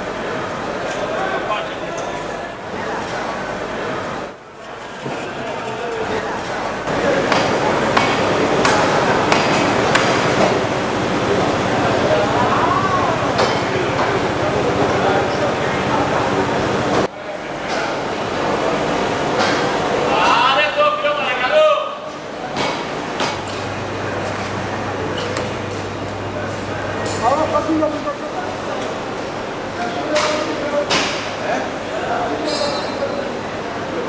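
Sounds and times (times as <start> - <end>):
busy market hall din: 0.0 - 34.0.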